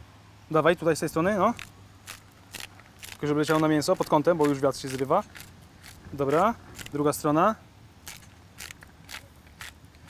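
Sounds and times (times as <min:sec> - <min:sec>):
salt grinder grinding: 0:01.5 - 0:07.1, 0:08.0 - 0:10.0.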